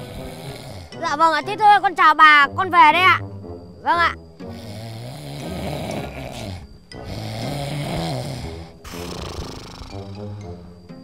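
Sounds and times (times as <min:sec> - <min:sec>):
man snoring loudly: 0:00.0 - 0:01.1, 0:04.4 - 0:10.6.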